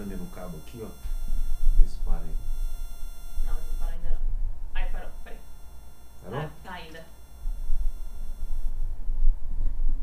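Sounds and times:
microphone crackle and handling noise: 0.0 - 6.3, 7.1 - 10.0.

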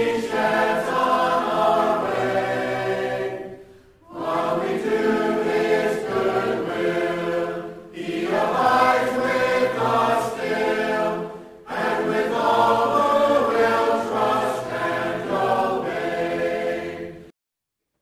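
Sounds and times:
choir singing a hymn: 0.0 - 17.3.

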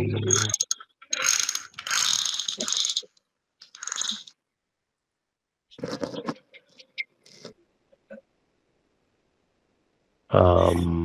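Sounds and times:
mouse scroll wheel ratcheting: 0.3 - 4.3.

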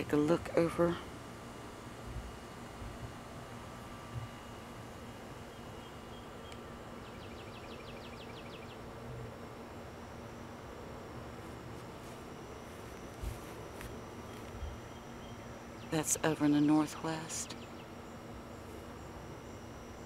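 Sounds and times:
outdoor evening ambience: 0.0 - 20.0.

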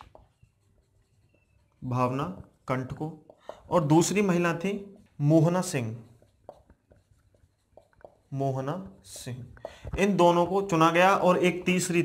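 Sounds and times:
marker squeaking: 0.0 - 12.0
marker writing on a whiteboard: 0.0 - 12.0.

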